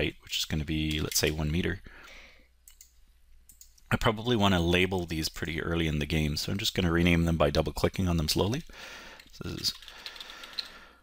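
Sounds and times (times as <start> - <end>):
computer mouse clicks: 2.6 - 3.8, 9.2 - 10.7.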